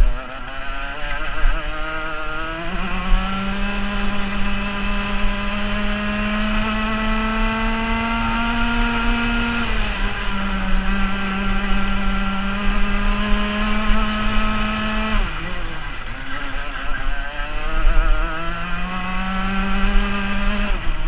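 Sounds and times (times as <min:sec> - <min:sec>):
kart engine revving: 0:00.0 - 0:21.0.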